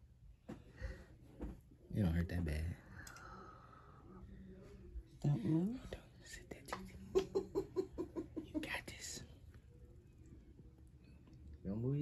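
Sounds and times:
woman breathing: 0.6 - 1.2, 2.9 - 4.4.

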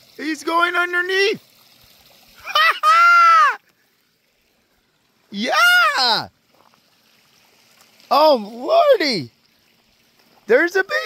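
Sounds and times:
person squealing: 2.4 - 3.6, 5.4 - 6.3.

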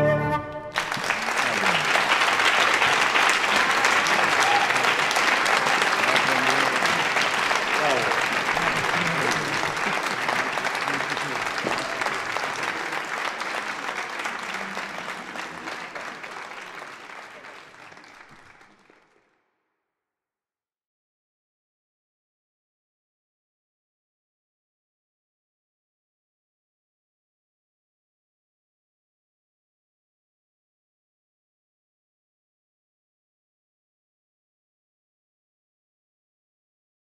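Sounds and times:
audience applause: 0.7 - 19.4.

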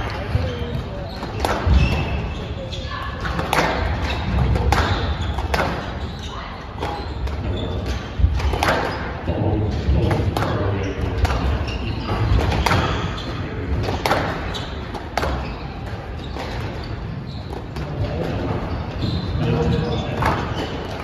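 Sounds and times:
squash ball struck by rackets: 3.2 - 6.0, 6.8 - 9.1, 9.9 - 13.1, 13.7 - 15.5.

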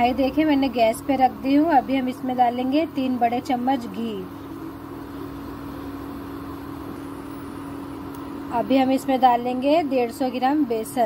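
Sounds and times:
cooktop humming: 0.0 - 11.0.

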